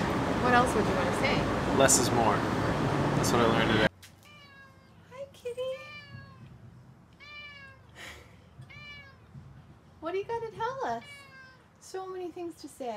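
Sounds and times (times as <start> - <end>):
cat meowing: 4.2 - 5.1, 5.7 - 6.5, 7.1 - 8.0, 8.6 - 9.3, 10.9 - 11.8.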